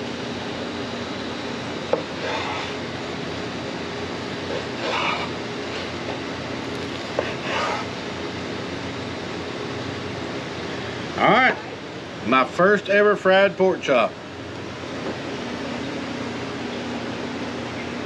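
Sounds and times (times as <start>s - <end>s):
steady hum: 0.0s - 18.0s.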